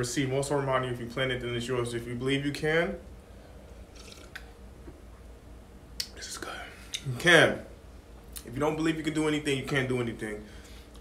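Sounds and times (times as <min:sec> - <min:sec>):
man slurping and swallowing: 0:03.8 - 0:04.5
lip smack: 0:06.0 - 0:06.2.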